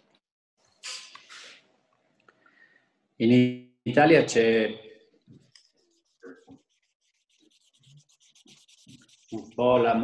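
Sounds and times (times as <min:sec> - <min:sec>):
faint rapid scratching: 0:05.2 - 0:10.0.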